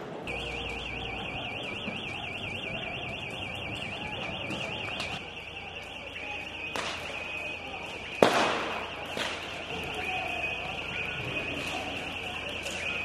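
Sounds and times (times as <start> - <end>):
street noise: 0.0 - 13.0
warbling electronic alarm: 0.3 - 13.0.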